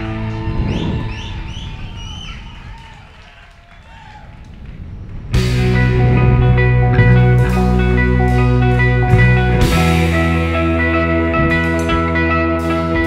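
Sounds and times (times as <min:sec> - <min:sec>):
rock band playing: 0:05.4 - 0:13.0.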